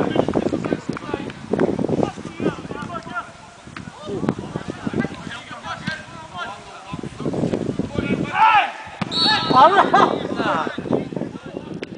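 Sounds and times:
referee's whistle blast: 0:09.0 - 0:09.9.

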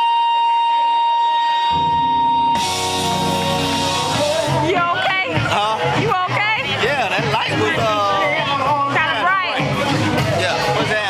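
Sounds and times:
saxophone holding high note: 0:00.0 - 0:04.7
band playing low notes: 0:01.3 - 0:09.0.

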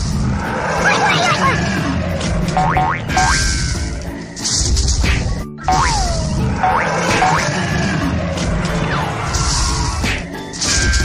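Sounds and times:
children's background music: 0:00.8 - 0:01.8, 0:02.5 - 0:04.2, 0:05.0 - 0:07.4
cartoon boing: 0:05.7 - 0:06.1.

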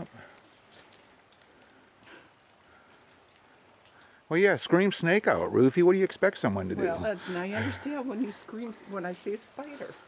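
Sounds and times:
faint outdoor hiss: 0:00.0 - 0:10.0
soft ticks: 0:00.9 - 0:04.2.

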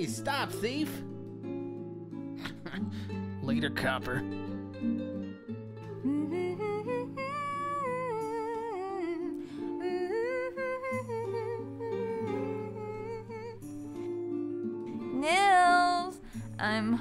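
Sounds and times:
soft background music: 0:00.0 - 0:17.0
woman humming: 0:05.9 - 0:13.7.

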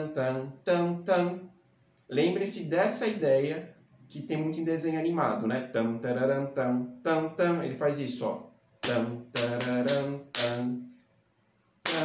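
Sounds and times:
man singing short notes: 0:05.9 - 0:11.0.

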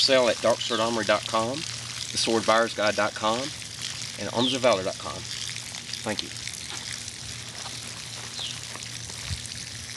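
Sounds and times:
constant hiss: 0:00.0 - 0:09.9.

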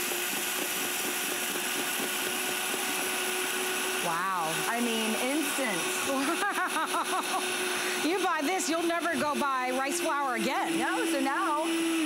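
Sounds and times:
blender milling rice: 0:00.0 - 0:12.0.

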